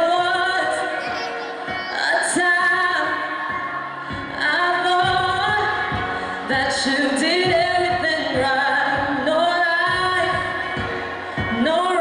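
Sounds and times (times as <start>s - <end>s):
backing music with beat: 0.0s - 12.0s
person singing into microphone: 0.0s - 12.0s.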